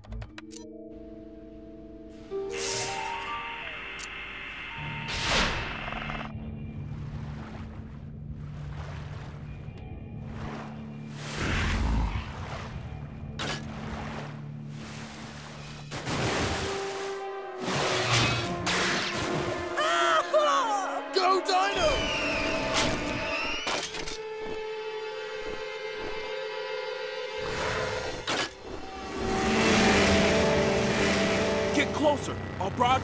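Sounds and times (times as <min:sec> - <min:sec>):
cartoon score music: 0:17.2 - 0:23.7, 0:28.9 - 0:33.0.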